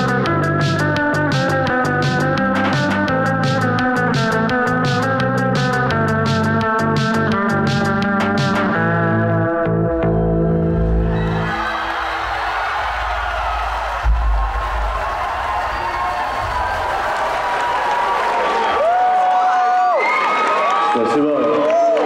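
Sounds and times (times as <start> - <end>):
crowd cheering and whooping: 10.8 - 22.0
low thump: 13.0 - 17.2.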